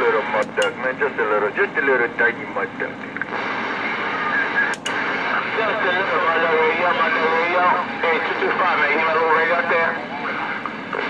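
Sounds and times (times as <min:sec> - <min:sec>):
radio static hiss: 0:00.0 - 0:11.0
sharp click: 0:00.4 - 0:00.8, 0:04.7 - 0:05.0.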